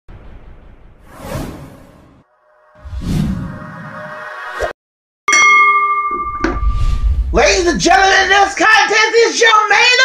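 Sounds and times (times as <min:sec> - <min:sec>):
whoosh: 0:00.1 - 0:04.8
low rumble: 0:06.4 - 0:08.1.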